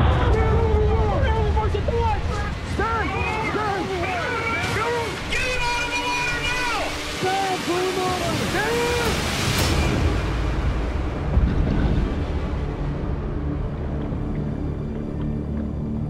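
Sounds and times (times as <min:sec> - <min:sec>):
rough sea: 0:00.0 - 0:16.0
underwater rumble of churning water: 0:00.0 - 0:16.0
water splash: 0:00.4 - 0:14.8.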